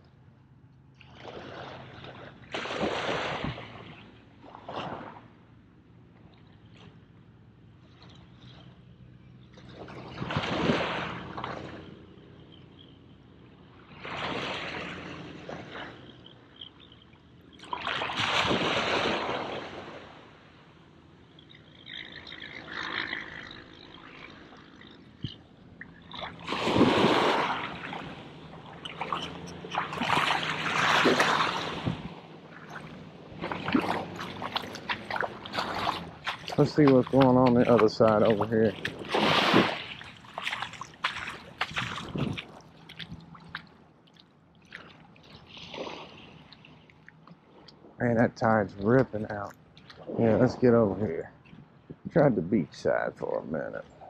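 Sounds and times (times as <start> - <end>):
water sloshing in swells: 0.4 - 54.0.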